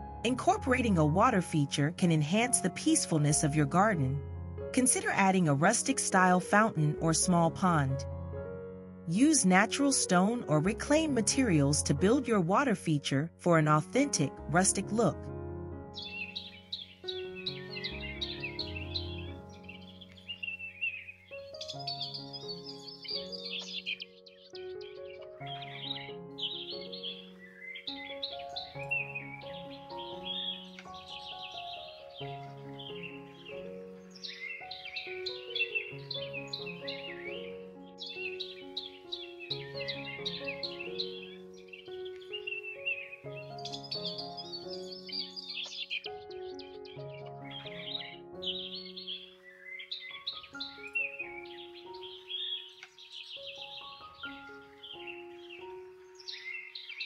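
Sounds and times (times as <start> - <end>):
calm background music: 0.0 - 57.0
birdsong chirping: 15.9 - 57.0.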